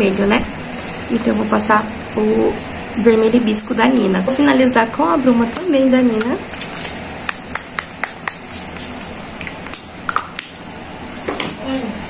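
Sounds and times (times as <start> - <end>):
spray bottle hissing puffs: 6.6 - 9.2.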